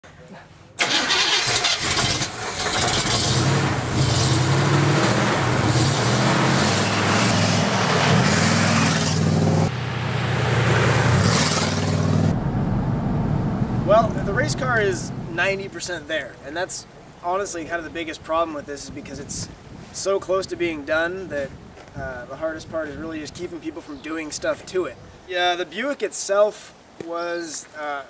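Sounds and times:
race car engine revving: 0.8s - 15.3s.

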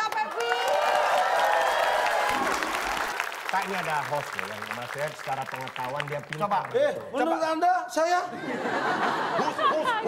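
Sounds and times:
audience applauding: 0.0s - 7.1s
audience cheering: 0.3s - 5.4s.

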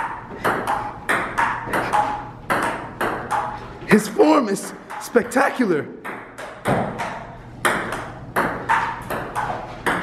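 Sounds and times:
table tennis ball hits: 0.0s - 3.7s, 4.6s - 5.4s, 6.0s - 10.0s.

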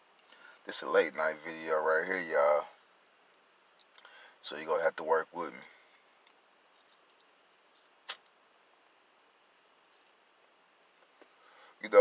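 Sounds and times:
crickets chirping: 0.0s - 12.0s
sharp click: 8.0s - 8.3s.

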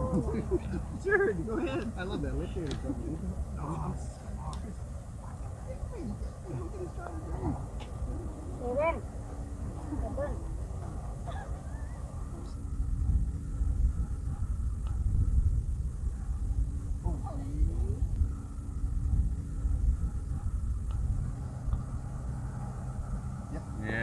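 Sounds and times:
people making wordless exclamations: 0.0s - 2.0s, 11.2s - 12.4s
steady low rumble: 0.0s - 24.0s.

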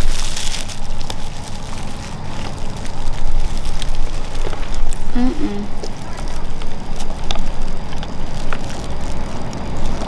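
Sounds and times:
paper bag crinkling: 0.0s - 10.0s
plastic wrap crinkling: 0.0s - 10.0s
sharp crackles: 0.0s - 10.0s
steady low rumble: 0.0s - 10.0s.

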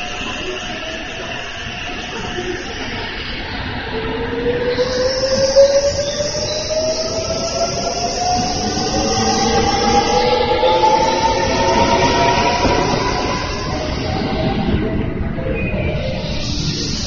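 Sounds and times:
train wheels rumbling on rails: 0.0s - 17.0s
electric train motor whine: 3.8s - 15.4s.

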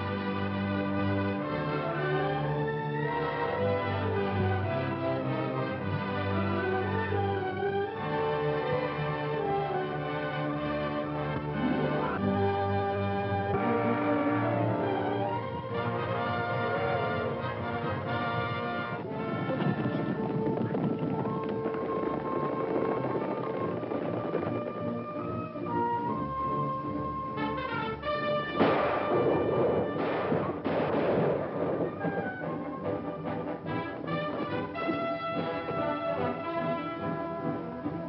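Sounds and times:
orchestral music led by brass: 0.0s - 38.0s
loud noisy crashes: 28.6s - 32.4s.

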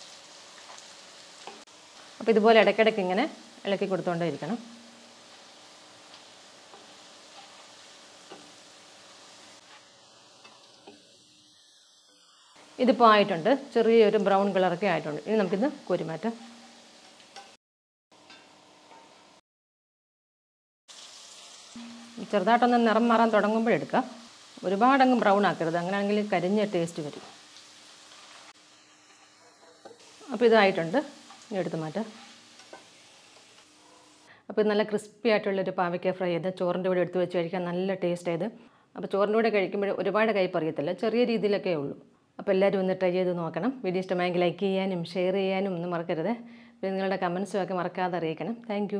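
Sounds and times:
food sizzling in oil: 0.0s - 19.4s, 20.9s - 34.3s
slotted spoon stirring: 31.2s - 33.6s
spatula tapping wok: 32.1s - 33.6s.

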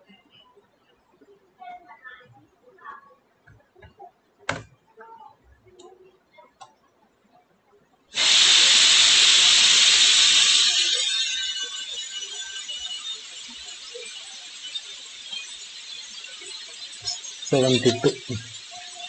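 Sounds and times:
loud hiss: 8.2s - 19.0s.

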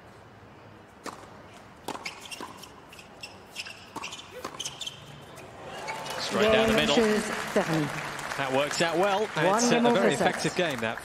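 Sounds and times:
tennis ball struck by rackets: 1.0s - 2.7s, 3.9s - 4.7s.

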